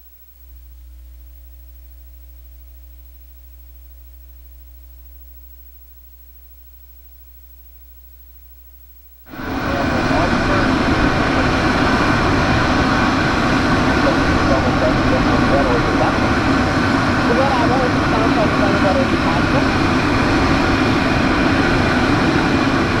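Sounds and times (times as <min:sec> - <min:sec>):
jet turbine whining: 0:09.3 - 0:23.0.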